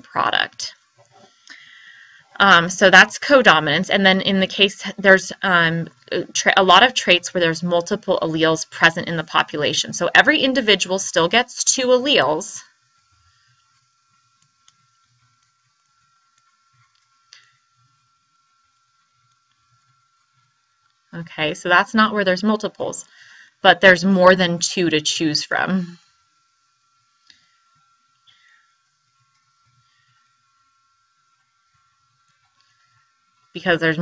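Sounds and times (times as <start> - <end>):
steady high hum: 0.0 - 34.0.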